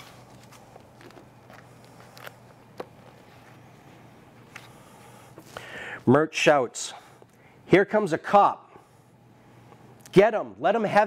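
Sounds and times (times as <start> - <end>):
book clicks and rustles: 0.0 - 3.2
steady low hum: 0.0 - 11.0.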